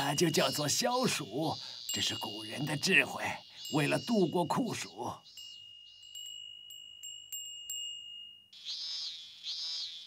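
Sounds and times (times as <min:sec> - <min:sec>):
glass wind bell tinkling: 0:01.8 - 0:08.6.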